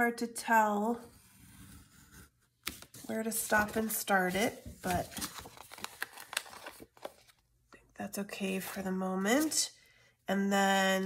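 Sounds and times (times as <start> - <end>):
paper rustling: 2.6 - 7.4.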